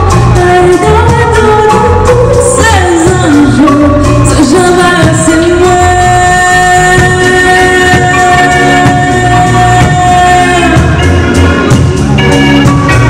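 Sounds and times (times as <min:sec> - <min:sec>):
woman singing into microphone: 0:00.0 - 0:11.1
bass guitar: 0:00.0 - 0:13.0
keyboard: 0:00.0 - 0:13.0
live band playing: 0:00.0 - 0:13.0.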